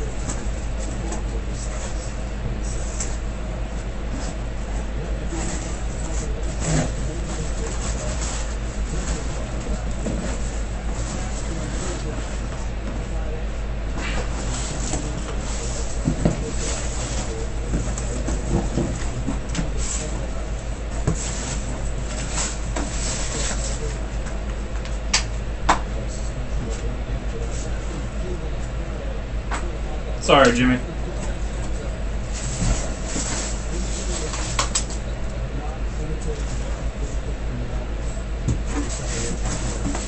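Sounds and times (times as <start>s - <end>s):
steady low hum: 0.0s - 40.0s
cardboard scraping and rustling: 5.2s - 12.4s, 14.0s - 24.0s, 32.3s - 34.8s, 38.5s - 40.0s.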